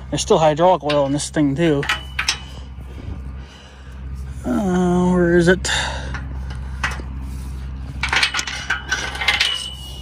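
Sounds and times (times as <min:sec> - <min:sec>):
metal coupler clinking and rattling: 0:00.2 - 0:02.8, 0:06.0 - 0:07.2, 0:07.9 - 0:10.0
metal clattering: 0:00.2 - 0:02.9, 0:06.0 - 0:10.0
thin metallic ring: 0:00.6 - 0:02.8, 0:07.9 - 0:10.0.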